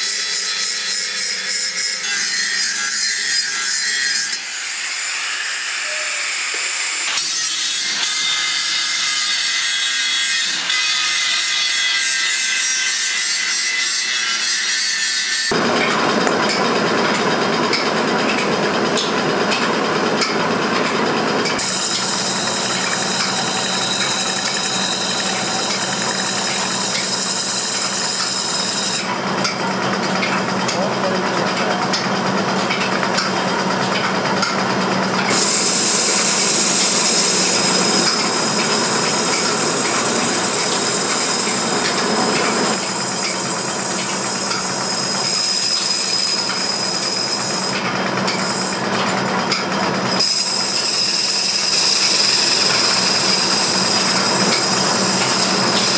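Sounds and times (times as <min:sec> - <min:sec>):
tool scraping spinning metal: 0:00.0 - 0:09.7, 0:12.9 - 0:55.9.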